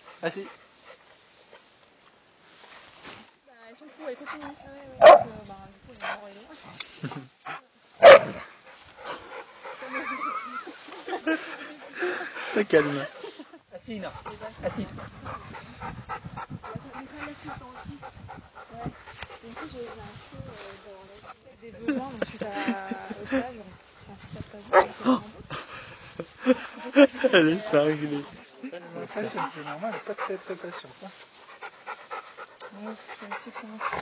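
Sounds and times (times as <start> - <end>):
dogs panting hard: 0.0 - 1.1, 3.8 - 5.4, 6.0 - 6.5, 7.4 - 23.5, 24.7 - 34.0
dogs low vocal sounds: 29.0 - 34.0.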